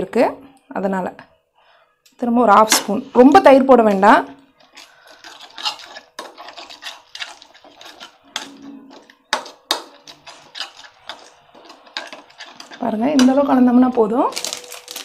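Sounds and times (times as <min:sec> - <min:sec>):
spoon scraping and clinking bowl: 0:04.6 - 0:13.5.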